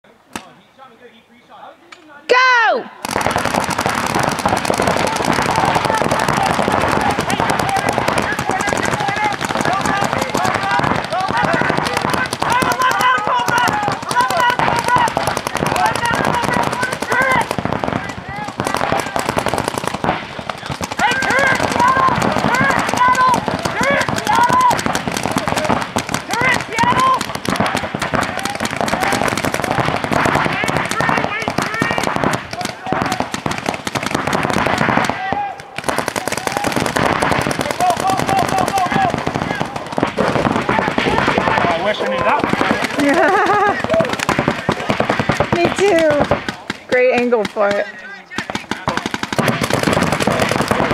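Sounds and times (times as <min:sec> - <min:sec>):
people shouting: 0:02.3 - 0:50.9
paintball markers firing: 0:03.0 - 0:50.9.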